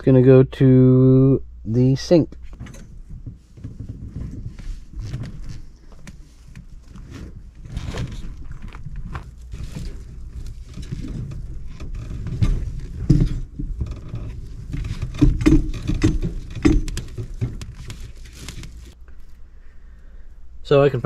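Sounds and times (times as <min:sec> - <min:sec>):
pipe bumps: 0:02.4 - 0:19.0
plastic pipe rustling and scuffing: 0:02.4 - 0:19.0.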